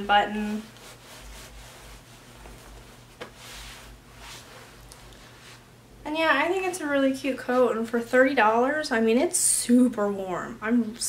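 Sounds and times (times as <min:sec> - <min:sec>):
low room hum: 0:00.0 - 0:11.0
coat fabric rustling: 0:00.2 - 0:05.7.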